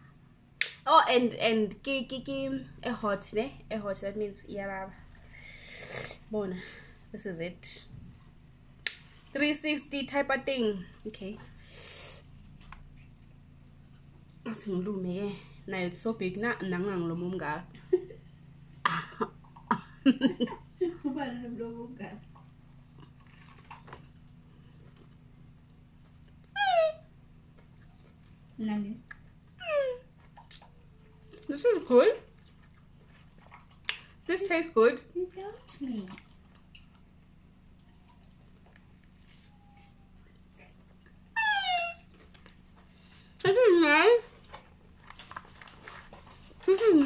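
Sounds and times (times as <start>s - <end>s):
faint low hum: 0.0s - 47.0s
high-pitched descending cry: 26.6s - 27.0s.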